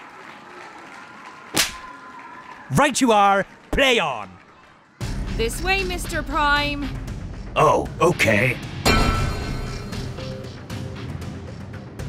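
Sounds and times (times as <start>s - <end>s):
sharp crack: 1.5s - 1.9s.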